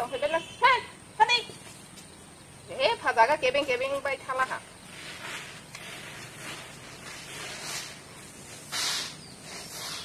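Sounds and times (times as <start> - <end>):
bare feet swishing through grain: 4.8 - 10.0.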